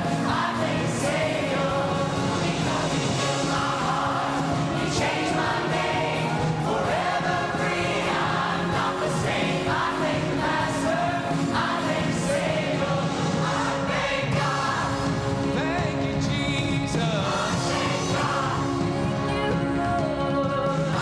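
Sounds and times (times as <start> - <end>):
choir singing a worship song: 0.0 - 16.2, 16.9 - 19.5.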